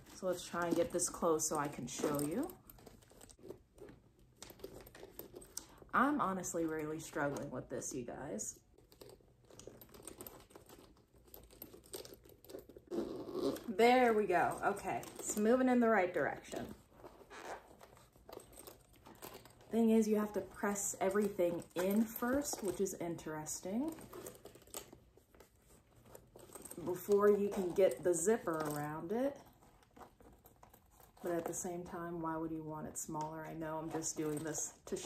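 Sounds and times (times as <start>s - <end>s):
zipper clicking and rustling: 0.0s - 35.0s.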